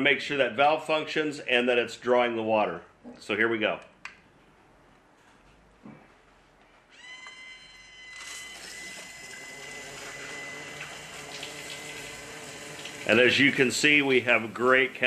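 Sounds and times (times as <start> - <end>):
steady high whine: 7.0 - 15.0.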